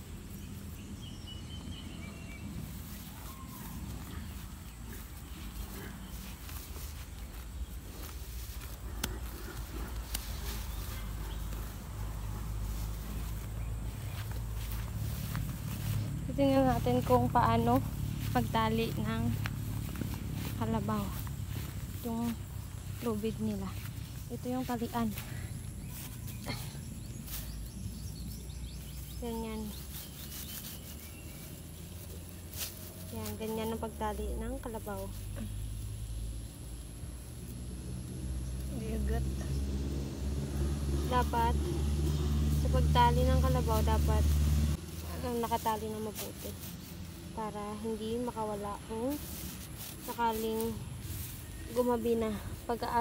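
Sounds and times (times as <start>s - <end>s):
steady low rumble: 0.0s - 30.2s
low outdoor background: 0.0s - 53.0s
rope rustling and rubbing: 2.3s - 35.4s, 42.0s - 53.0s
buffalo chewing grass: 3.8s - 33.6s.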